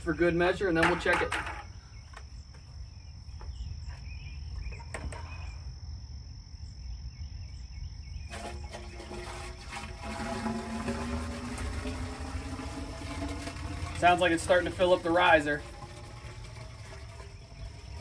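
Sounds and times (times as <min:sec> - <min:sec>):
insects chirring: 0:00.0 - 0:18.0
hollow ringing of filling pipe: 0:08.3 - 0:18.0
water poured from bucket: 0:08.3 - 0:18.0.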